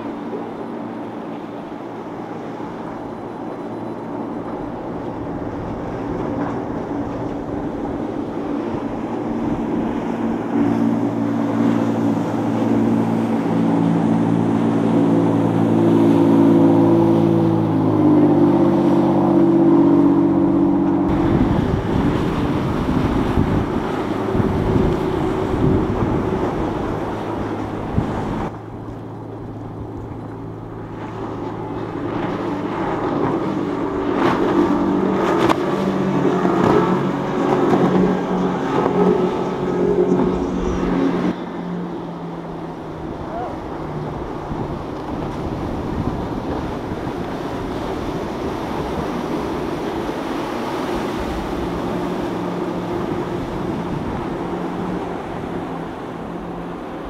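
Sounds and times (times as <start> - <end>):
motorboat engines passing: 0.0 - 57.0.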